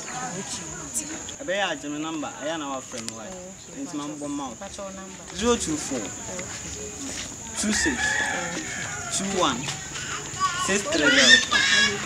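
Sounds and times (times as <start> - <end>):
people's voices: 0.0 - 12.0
rooster crowing: 7.6 - 12.0.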